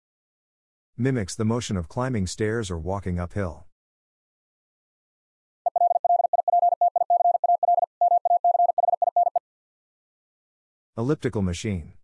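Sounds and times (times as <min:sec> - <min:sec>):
morse code tone: 0:05.7 - 0:09.4.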